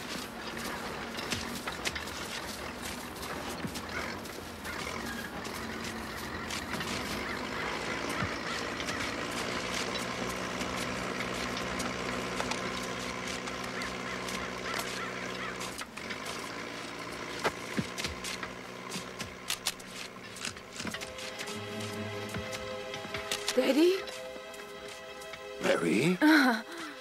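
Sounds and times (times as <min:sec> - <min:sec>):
low droning hum: 0:00.0 - 0:25.7.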